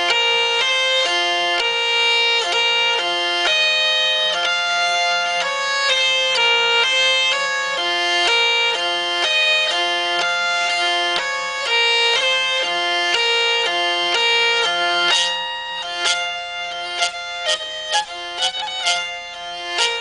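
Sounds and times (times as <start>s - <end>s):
hurdy-gurdy folk melody with drone: 0.0s - 20.0s.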